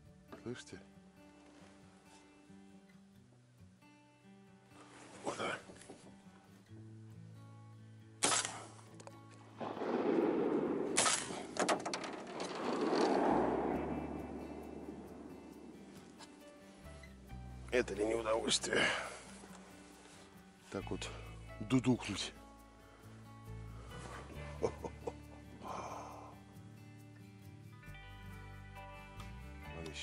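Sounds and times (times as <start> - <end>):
background music: 0.0 - 30.0
shotgun shots echoing: 8.2 - 8.7, 9.6 - 16.5.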